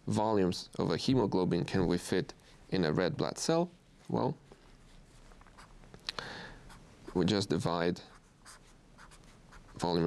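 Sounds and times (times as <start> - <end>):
marker writing on paper: 5.6 - 5.8, 8.1 - 10.0.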